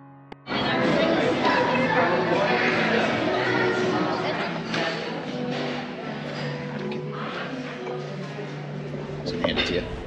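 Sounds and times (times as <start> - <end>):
background music with held notes: 0.0 - 10.0
low murmur of room: 0.5 - 10.0.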